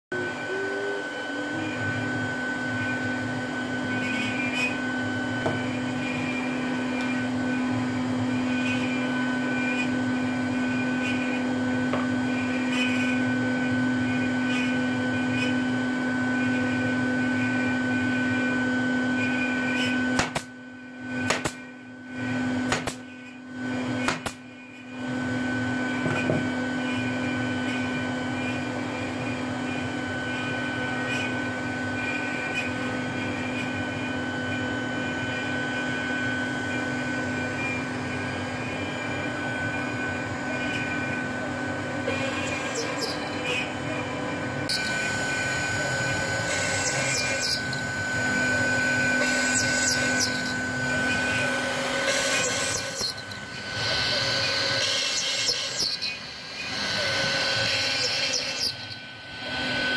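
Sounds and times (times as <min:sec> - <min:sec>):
machine hum: 0:00.1 - 0:59.9
nail gun firing: 0:20.2 - 0:20.5.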